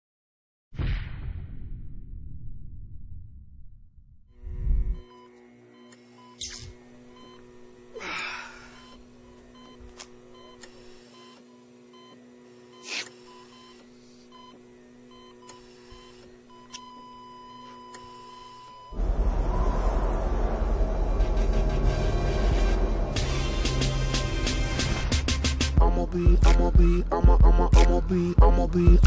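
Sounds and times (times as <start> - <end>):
hum of held electronic tones: 4.4 - 19.0
whooshing sweeps: 19.0 - 25.2.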